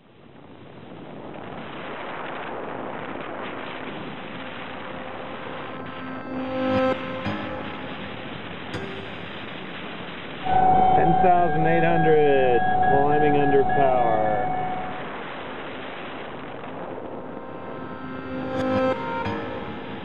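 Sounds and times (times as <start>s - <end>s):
piano-like notes: 5.0s - 15.3s.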